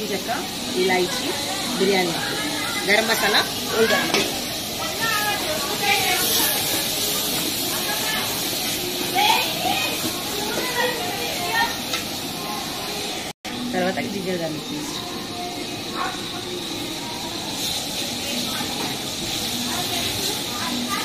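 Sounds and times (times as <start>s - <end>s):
faint voices: 0.0s - 21.0s
onions sizzling in hot oil: 0.0s - 21.0s.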